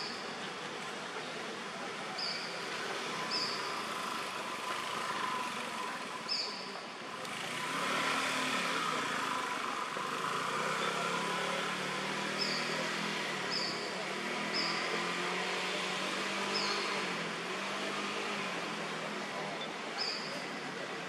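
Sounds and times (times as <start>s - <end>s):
distant motor vehicle engine: 0.0s - 21.0s.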